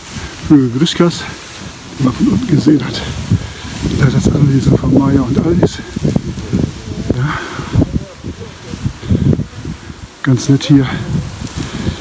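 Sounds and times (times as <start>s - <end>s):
leaves rustling: 0.0s - 12.0s.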